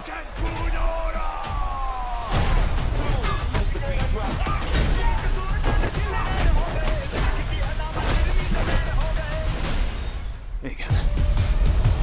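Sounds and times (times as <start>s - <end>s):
wordless shouts: 0.0s - 9.6s
action music with bass pulse: 0.0s - 12.0s.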